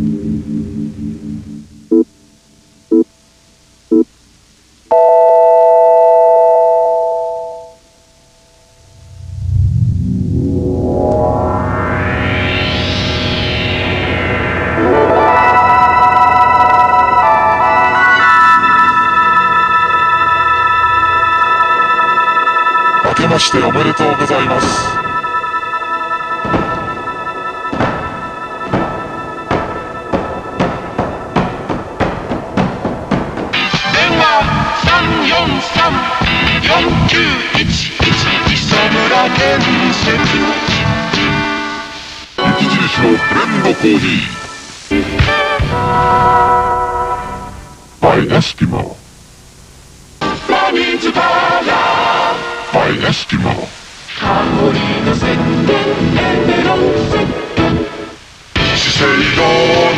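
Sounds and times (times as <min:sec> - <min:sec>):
electronic chime chord: 0:04.9 - 0:09.6, 0:10.3 - 0:32.0
music: 0:11.1 - 0:48.0, 0:50.2 - 0:52.8, 0:54.1 - 0:59.9
sharp percussive hits: 0:26.3 - 0:34.0.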